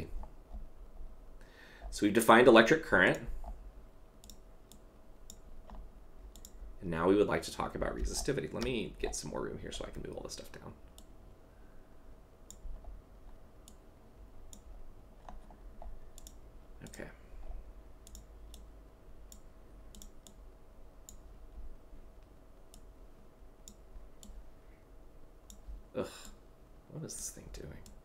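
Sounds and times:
faint electrical hum: 0:00.0 - 0:28.0
mouse clicks: 0:04.2 - 0:06.6, 0:14.5 - 0:17.0, 0:18.0 - 0:18.7, 0:19.3 - 0:20.4, 0:23.6 - 0:24.4.

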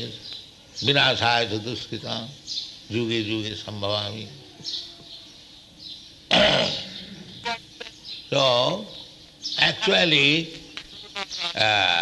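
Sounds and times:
elderly man coughing: 0:06.3 - 0:06.9.

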